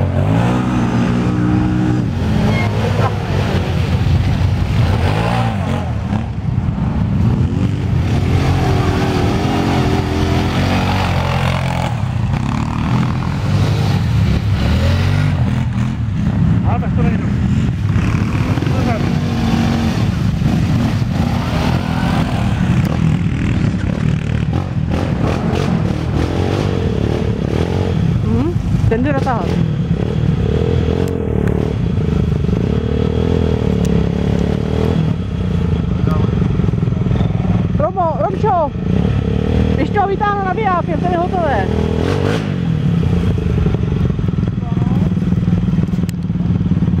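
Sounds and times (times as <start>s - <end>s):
quad bike engines revving: 0.0s - 47.0s.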